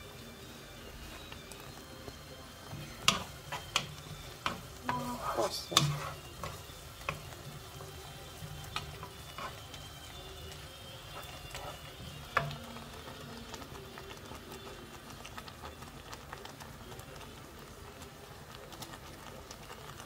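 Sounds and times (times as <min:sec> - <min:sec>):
onions sizzling in oil: 0:00.0 - 0:20.0
wooden spoon knocking on pan: 0:02.8 - 0:07.3.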